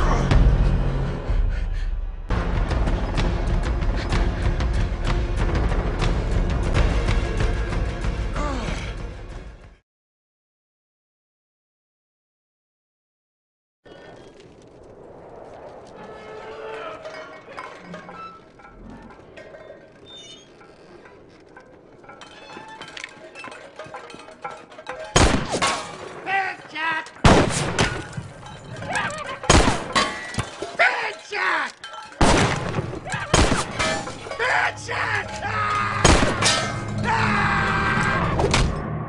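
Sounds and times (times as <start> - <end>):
film score: 0.0 - 9.8, 13.9 - 39.0
desert ambience: 13.9 - 38.4
revolver and rifle shots: 25.2 - 26.1, 27.2 - 28.2, 29.4 - 30.2, 32.2 - 34.0, 36.0 - 36.6.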